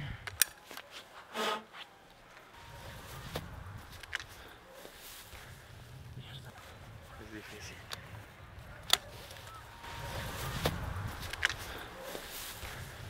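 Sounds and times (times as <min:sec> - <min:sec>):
shotgun metallic clicks: 0:00.2 - 0:00.8, 0:03.9 - 0:04.3, 0:10.6 - 0:11.6.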